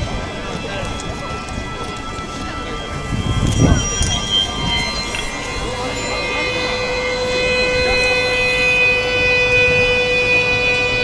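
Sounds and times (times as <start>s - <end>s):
sustained chord drone: 0.0s - 11.0s.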